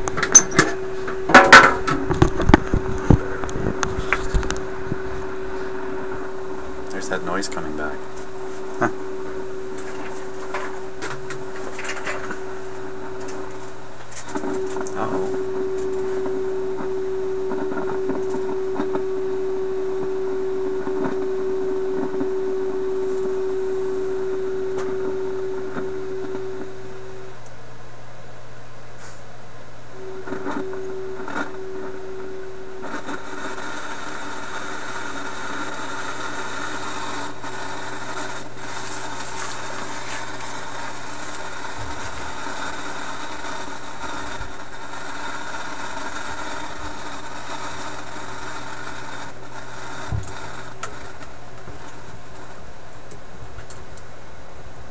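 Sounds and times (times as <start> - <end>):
radio test tone: 0.0 - 27.8, 29.0 - 51.0
low mains hum: 0.0 - 54.9
radio hiss: 0.0 - 54.9.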